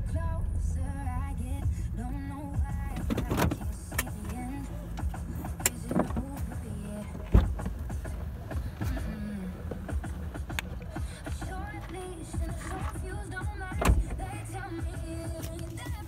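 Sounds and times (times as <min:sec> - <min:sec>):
road and engine rumble: 0:00.0 - 0:16.0.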